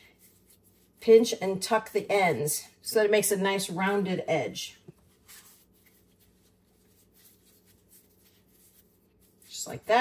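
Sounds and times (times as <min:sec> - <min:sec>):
hands rubbing bread dough: 0:00.0 - 0:03.0, 0:04.8 - 0:10.0.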